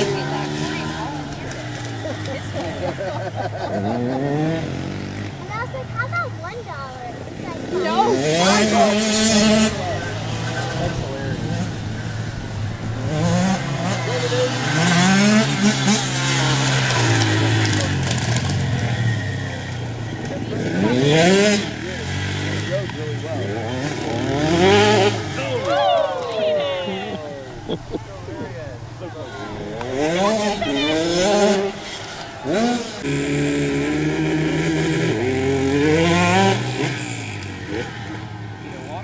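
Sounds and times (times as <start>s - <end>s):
dirt bike engines revving: 0.0s - 39.0s.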